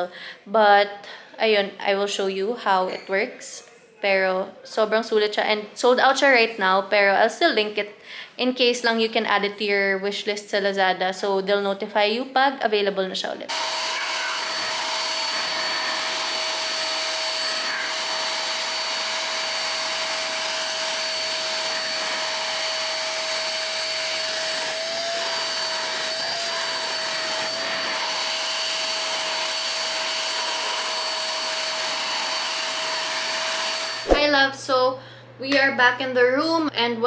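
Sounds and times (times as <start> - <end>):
handheld vacuum cleaner running: 13.5 - 34.2.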